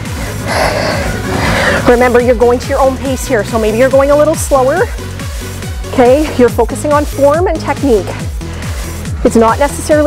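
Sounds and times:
electronic workout music: 0.0 - 10.0.

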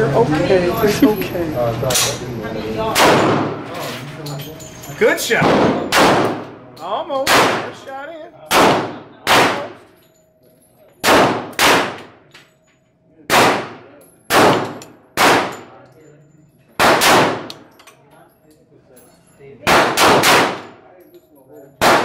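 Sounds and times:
handgun shots echoing indoors: 2.9 - 3.7, 5.4 - 6.6, 7.2 - 7.9, 8.5 - 10.0, 11.0 - 12.6, 13.3 - 15.8, 16.8 - 17.8, 19.6 - 20.8, 21.8 - 22.0.

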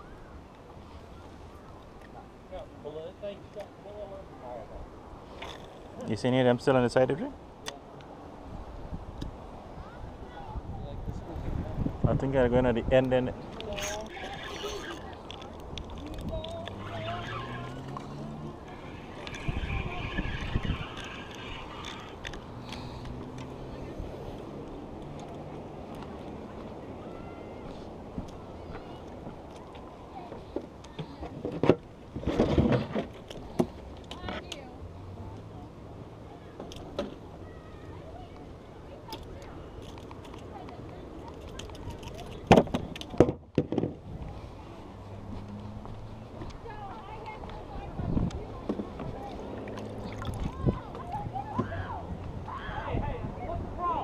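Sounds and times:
wind rumbling on microphone: 8.3 - 30.2, 39.4 - 54.0
faint indistinct voices: 13.4 - 31.8, 32.5 - 43.3, 44.0 - 54.0.

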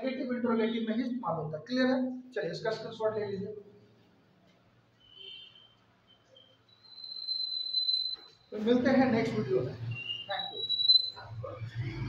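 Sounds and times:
high whistle-like tone: 5.0 - 8.5, 9.9 - 11.4.

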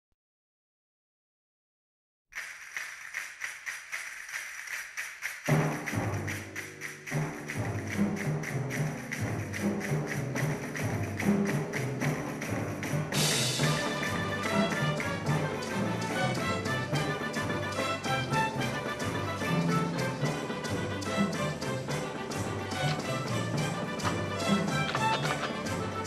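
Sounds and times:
quick rattling rhythm: 2.4 - 26.0
western film title music: 2.4 - 26.0.

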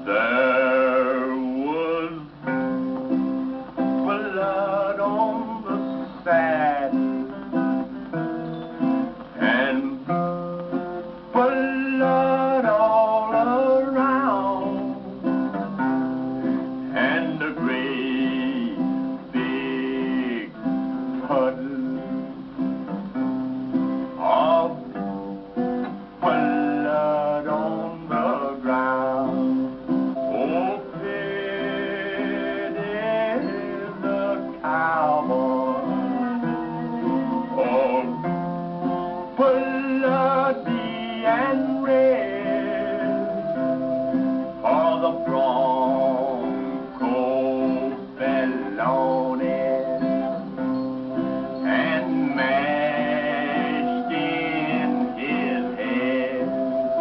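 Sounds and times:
man singing slow song: 0.0 - 8.0, 9.3 - 10.6, 11.3 - 15.6, 16.4 - 22.6, 24.0 - 25.1, 26.2 - 57.0
guitar accompaniment: 0.0 - 57.0.

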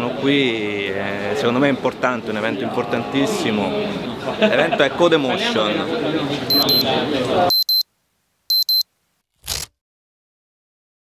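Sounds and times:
high-pitched double beep: 6.5 - 6.8, 7.5 - 7.8, 8.5 - 8.8.

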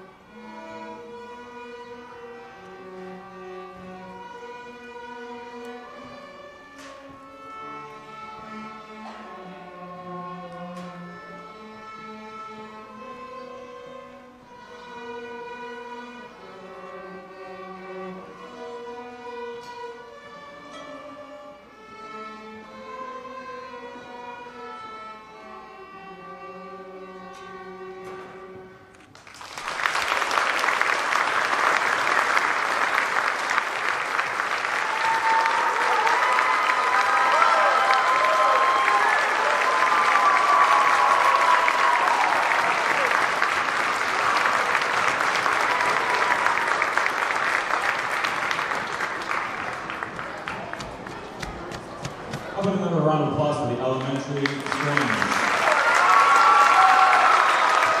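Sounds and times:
string orchestra playing: 0.0 - 29.2, 29.9 - 58.0
audience applause: 29.1 - 58.0.

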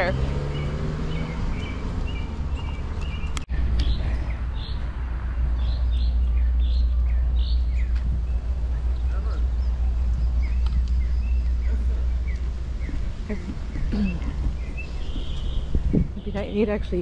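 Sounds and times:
birds chirping: 0.0 - 17.0
steady low rumble: 1.6 - 17.0.

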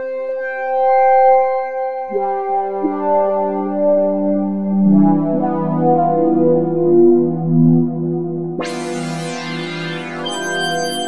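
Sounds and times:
synthesizer brass note: 8.6 - 11.0.

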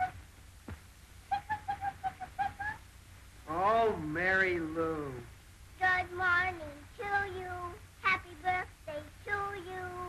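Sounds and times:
girl singing: 5.8 - 10.0.

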